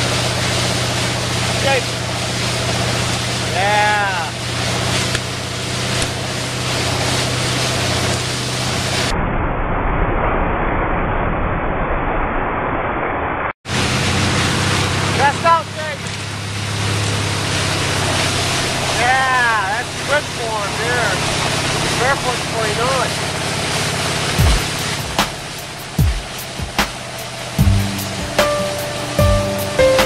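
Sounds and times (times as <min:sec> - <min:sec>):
boat engine humming: 0:00.0 - 0:09.1, 0:13.7 - 0:30.0
water spray hissing: 0:00.0 - 0:09.1, 0:13.7 - 0:30.0.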